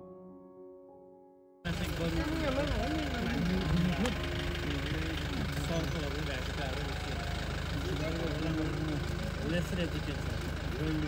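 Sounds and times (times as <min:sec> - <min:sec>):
people talking: 0:01.7 - 0:11.0
vehicle engine idling: 0:01.7 - 0:11.0.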